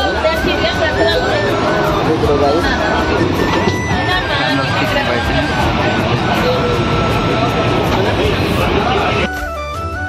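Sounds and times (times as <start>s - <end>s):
train running rumble: 0.0s - 9.3s
faint music: 0.0s - 10.0s.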